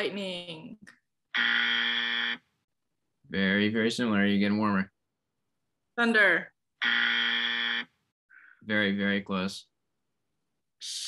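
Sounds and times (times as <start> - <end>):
game-show wrong-answer buzzer: 1.4 - 2.4, 6.8 - 7.8.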